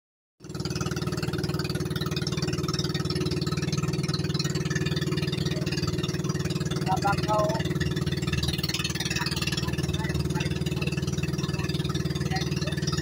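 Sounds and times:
small boat engine running: 0:00.4 - 0:13.0
water rushing along hull: 0:00.4 - 0:13.0.

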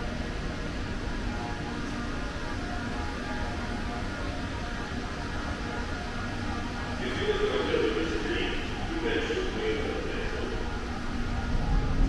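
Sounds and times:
air handling drone: 0:00.0 - 0:12.0.

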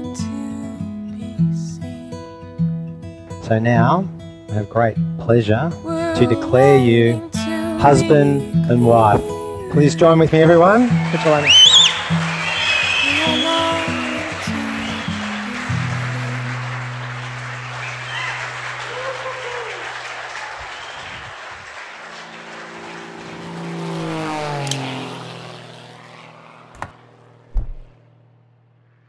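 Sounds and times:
background music: 0:05.8 - 0:10.9
people applauding: 0:10.6 - 0:23.9.

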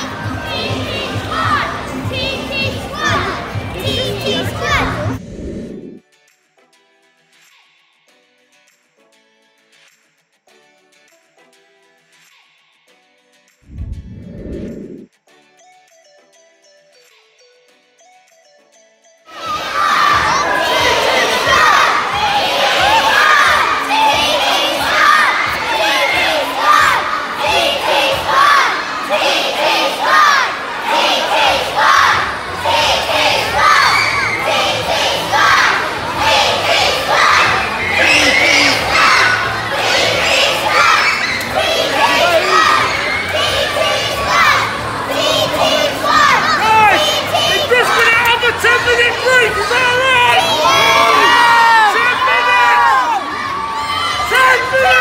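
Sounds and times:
crowd screaming and cheering: 0:19.3 - 0:55.0.

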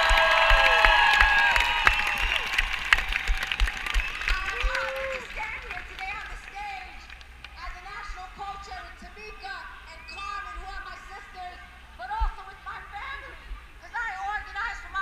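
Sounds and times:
outdoor crowd: 0:00.0 - 0:15.0.

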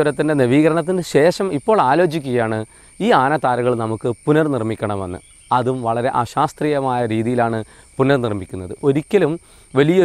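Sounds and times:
crickets droning: 0:00.0 - 0:10.0
man talking: 0:00.0 - 0:10.0.

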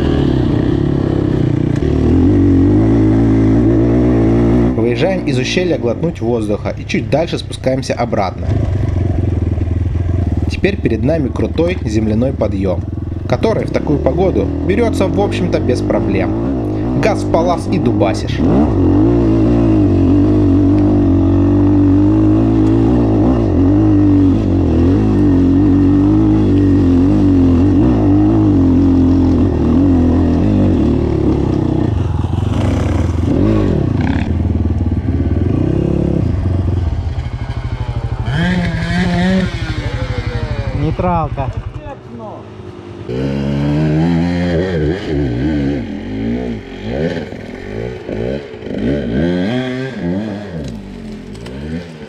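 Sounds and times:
dirt bike engine revving: 0:00.0 - 0:52.0.

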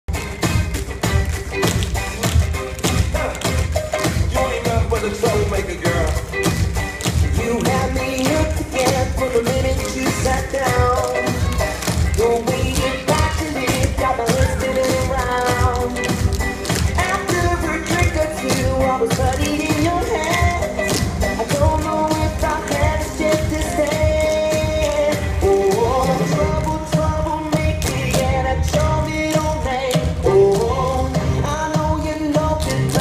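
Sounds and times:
music with bass-heavy beat: 0:00.1 - 0:33.0
tap shoes clicking on stage: 0:00.2 - 0:25.9.

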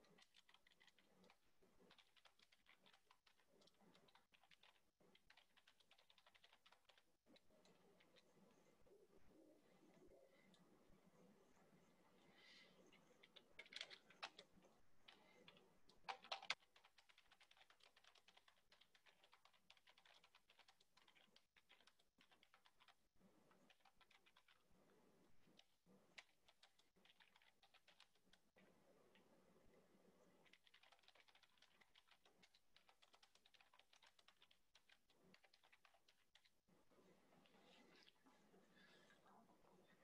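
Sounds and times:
computer keyboard typing: 0:00.0 - 0:08.3, 0:13.1 - 0:24.7, 0:25.4 - 0:28.6, 0:30.2 - 0:36.5.

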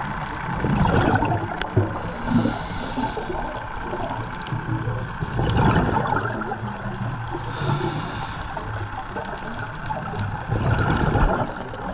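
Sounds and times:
underwater gurgling and bubbling: 0:00.0 - 0:11.9.

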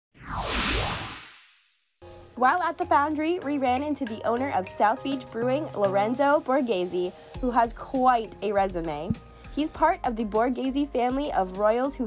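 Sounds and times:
whoosh sound effect: 0:00.1 - 0:01.6.

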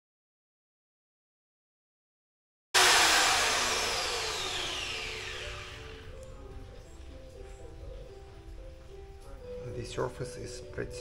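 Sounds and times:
power grinder whining: 0:02.8 - 0:06.2.

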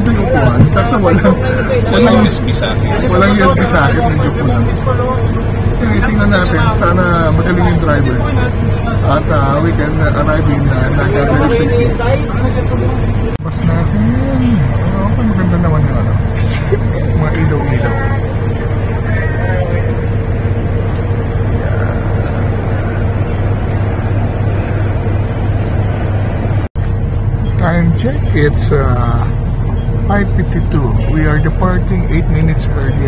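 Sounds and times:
people talking: 0:00.0 - 0:24.9, 0:27.4 - 0:29.4, 0:30.0 - 0:33.0
bus engine hum: 0:00.0 - 0:33.0.

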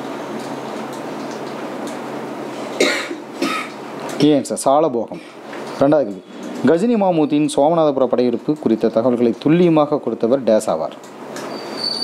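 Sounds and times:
person coughing: 0:02.8 - 0:03.8.

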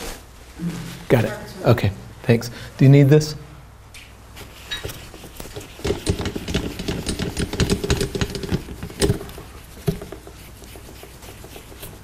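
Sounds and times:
marker writing on paper: 0:04.4 - 0:12.0
sharp knocks: 0:05.5 - 0:10.4.

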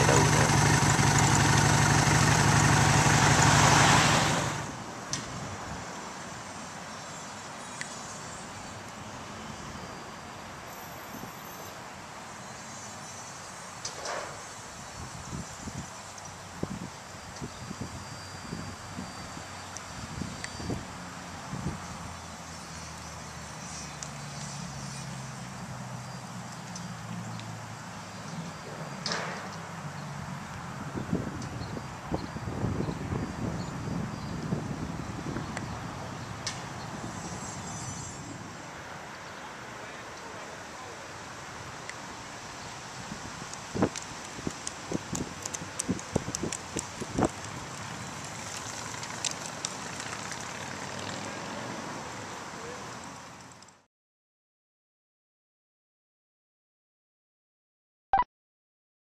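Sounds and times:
vehicle passing: 0:00.0 - 0:04.9, 0:47.2 - 0:53.4
low vehicle engine hum: 0:00.0 - 0:05.1, 0:43.6 - 0:53.7
sharp clicks: 0:43.5 - 0:47.6, 0:48.5 - 0:50.4.

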